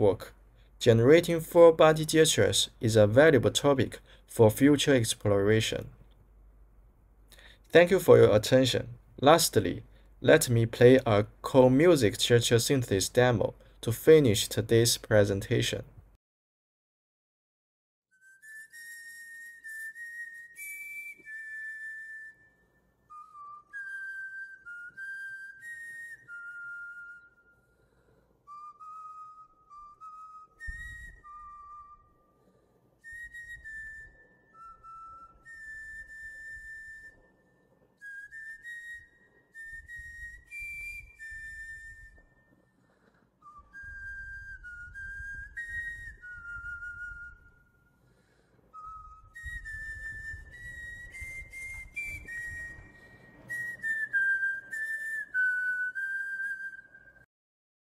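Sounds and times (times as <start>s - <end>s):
whistled tune: 18.1s - 57.3s.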